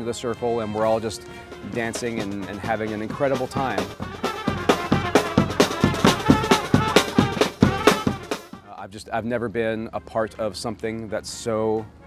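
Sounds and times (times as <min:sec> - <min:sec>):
trumpet melody: 0:00.0 - 0:08.9, 0:09.9 - 0:12.0
snare and bass drum beating: 0:01.7 - 0:08.8.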